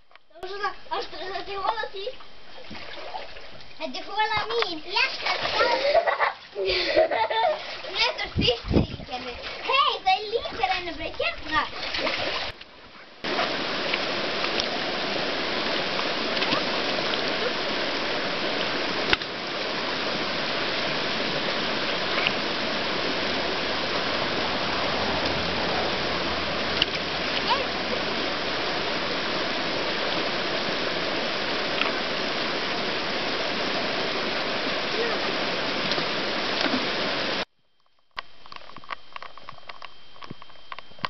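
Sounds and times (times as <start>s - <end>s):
river rushing over stones: 13.2s - 37.4s.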